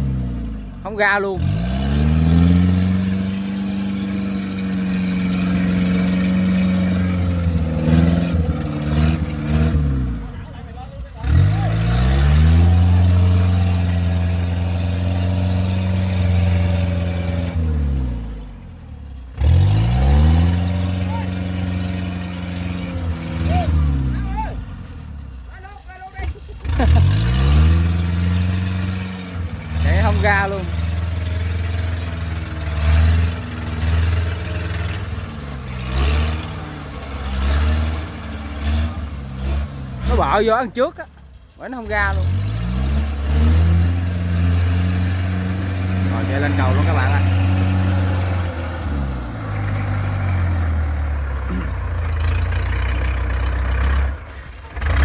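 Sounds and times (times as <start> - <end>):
tracked vehicle engine revving: 0.0 - 55.0.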